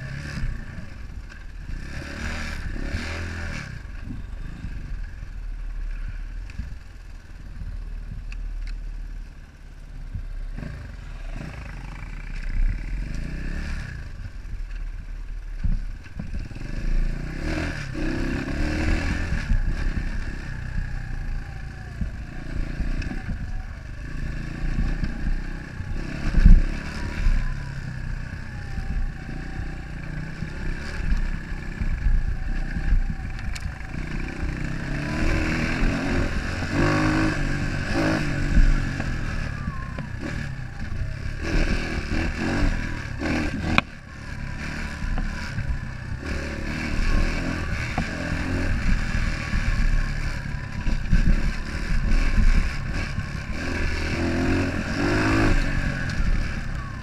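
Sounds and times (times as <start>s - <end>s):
dirt bike engine revving: 1.6s - 5.0s, 16.4s - 20.8s, 22.2s - 57.0s.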